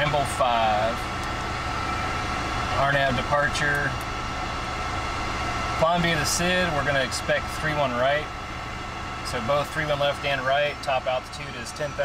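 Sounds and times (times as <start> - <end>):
cockpit hum and hiss: 0.0 - 12.0.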